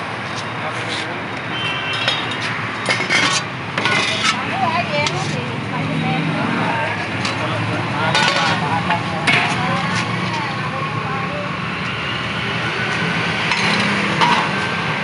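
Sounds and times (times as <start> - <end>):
traffic noise: 0.0 - 15.0
metal lids clinking and scraping: 2.0 - 5.3, 8.1 - 9.6, 13.5 - 14.7.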